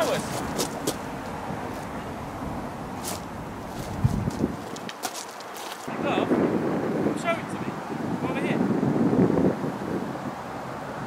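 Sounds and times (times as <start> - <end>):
person speaking: 0.0 - 0.9
outdoor background noise: 0.0 - 11.0.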